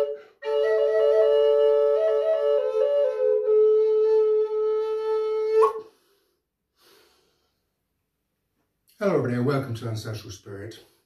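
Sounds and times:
double flute long note: 0.0s - 5.9s
faint breath: 5.8s - 7.8s.

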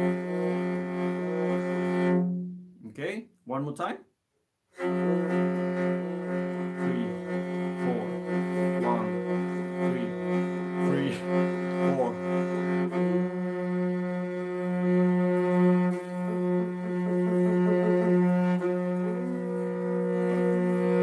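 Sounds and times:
bowed fiddle drone: 0.0s - 2.7s, 4.7s - 21.0s.

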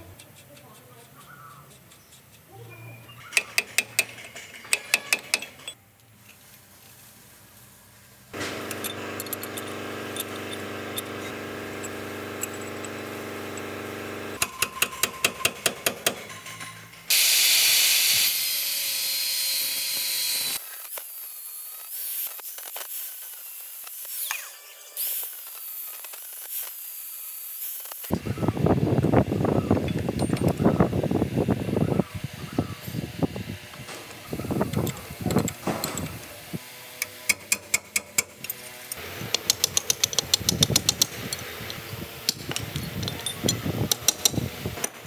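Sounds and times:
angle grinder grinding steel: 8.4s - 14.8s.

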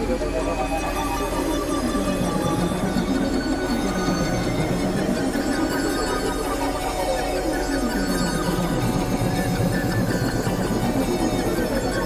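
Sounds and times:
electronic synthesizer drones: 0.0s - 12.0s.

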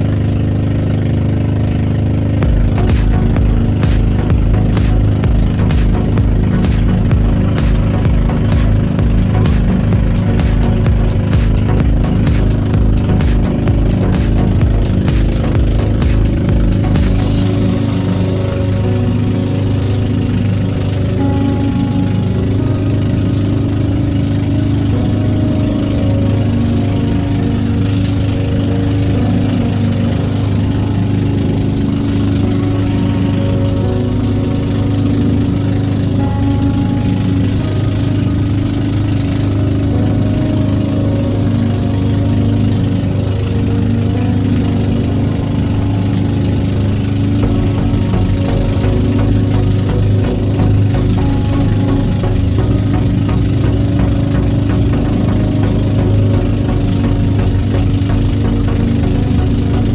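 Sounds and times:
background music: 0.0s - 59.9s
boat engine humming: 0.0s - 59.9s.

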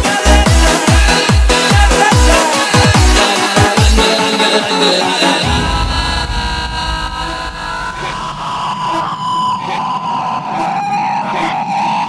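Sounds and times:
deep bass: 0.0s - 4.4s, 5.4s - 9.0s
noisy synth wash: 0.0s - 12.0s
held synth tones: 2.6s - 11.3s.

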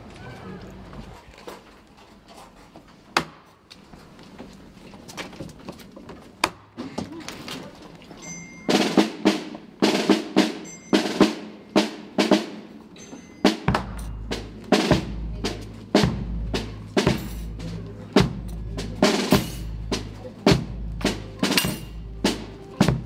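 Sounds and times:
snare drums beating slow rhythm: 13.4s - 23.0s
deep bass drum: 13.7s - 23.0s.

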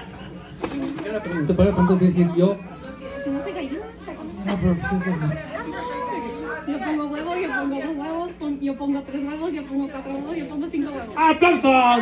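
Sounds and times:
party chatter: 0.0s - 12.0s.

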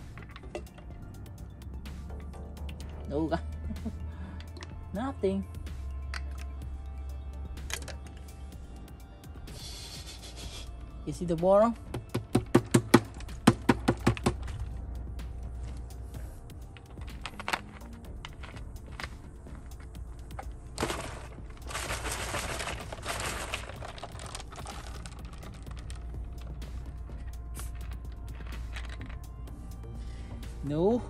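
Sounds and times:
candies knocking inside plastic bottle: 11.9s - 14.6s, 19.8s - 26.1s.

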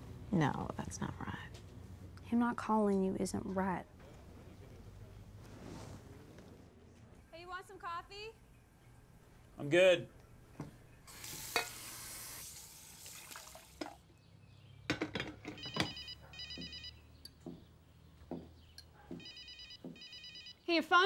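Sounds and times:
pulsed electronic ringtone: 15.6s - 17.0s, 19.2s - 20.6s.

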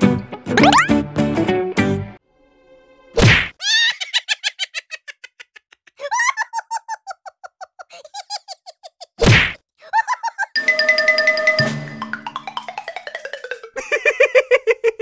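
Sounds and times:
cartoon whack: 0.6s - 0.9s, 3.2s - 3.6s, 9.2s - 9.6s
quick pitched blips: 0.6s - 0.9s
mallet percussion tune: 10.6s - 13.9s.

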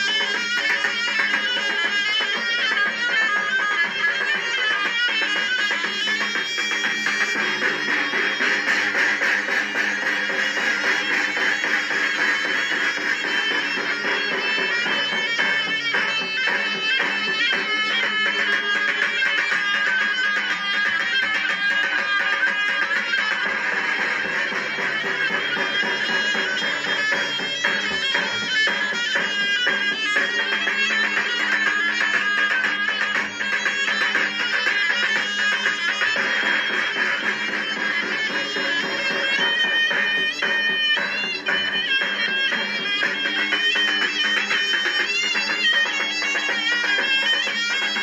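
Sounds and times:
shrill zurna folk dance tune: 0.0s - 48.0s.

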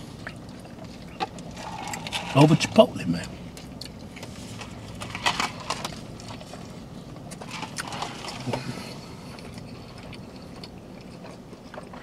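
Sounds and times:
wet chewing and smacking: 0.0s - 2.2s, 3.2s - 12.0s.

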